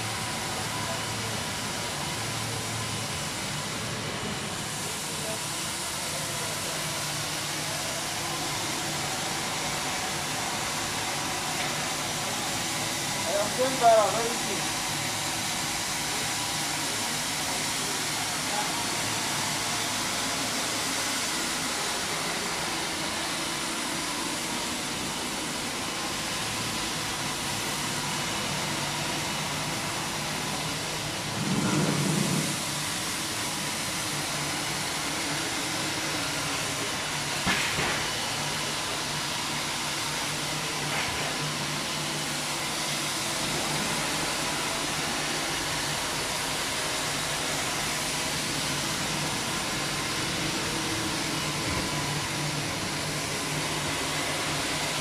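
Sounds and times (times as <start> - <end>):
floor scrubber motor and suction: 0.0 - 55.0.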